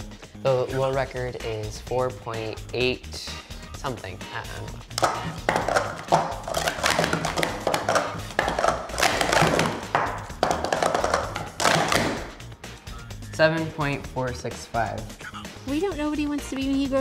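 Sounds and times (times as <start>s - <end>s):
background music: 0.0s - 17.0s
plastic cups clattering on mat: 4.9s - 12.4s.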